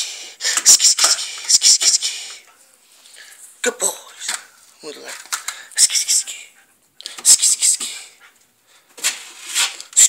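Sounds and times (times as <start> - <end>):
man whispering hissing sounds: 0.0 - 2.5, 5.6 - 8.2.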